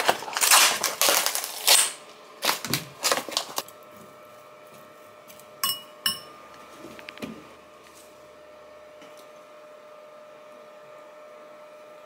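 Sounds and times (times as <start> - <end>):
plastic pouch crinkling: 0.0 - 3.7.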